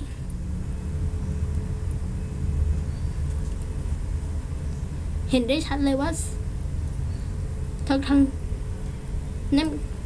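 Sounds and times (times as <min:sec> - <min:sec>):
faint steady hum: 0:00.0 - 0:10.0
low background rumble: 0:00.0 - 0:10.0.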